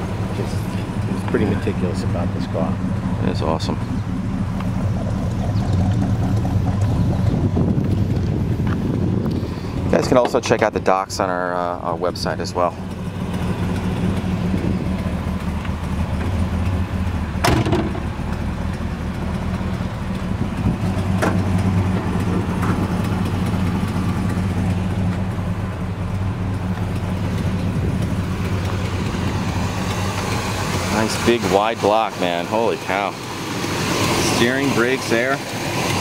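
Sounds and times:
car engine idling: 0.0 - 36.0.

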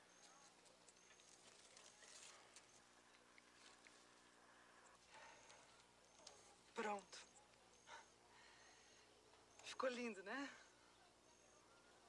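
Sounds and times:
faint background hiss: 0.0 - 12.0
low steady hum: 0.0 - 12.0.

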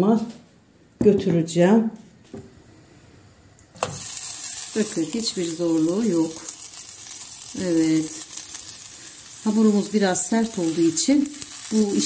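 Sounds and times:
dough sizzling in a frying pan: 3.7 - 12.0.

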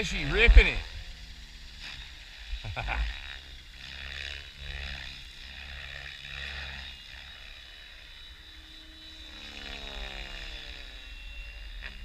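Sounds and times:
rc helicopter drone: 0.0 - 12.0
rotor whoosh: 0.0 - 12.0.

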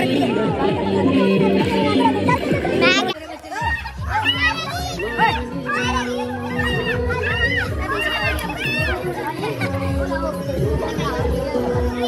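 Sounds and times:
dance music with a beat: 0.0 - 12.0
young people shouting and cheering: 0.0 - 12.0.

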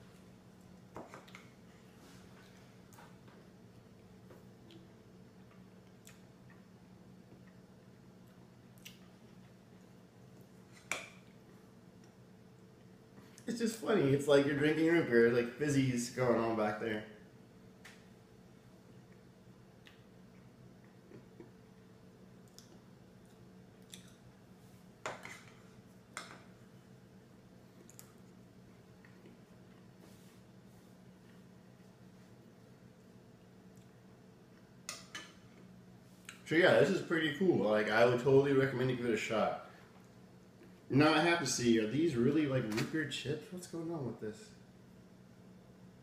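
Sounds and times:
low room hum: 0.0 - 46.0.

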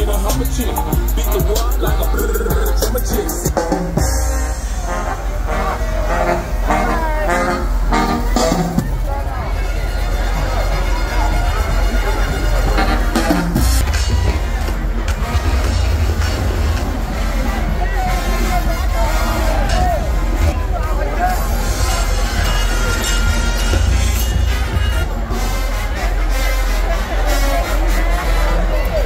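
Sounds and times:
crowd talking and calling: 0.0 - 29.0
parade music with heavy bass: 0.0 - 29.0.

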